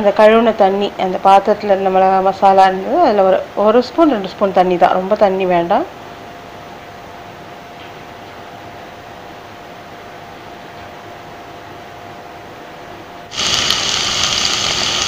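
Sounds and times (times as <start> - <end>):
steady low hum: 0.0 - 15.0
food sizzling in hot oil: 13.3 - 15.0.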